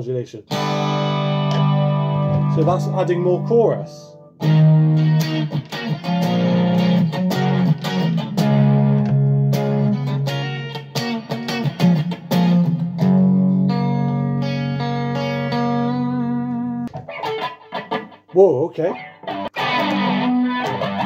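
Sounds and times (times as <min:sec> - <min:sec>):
electric guitar strumming chords: 0:00.5 - 0:21.0.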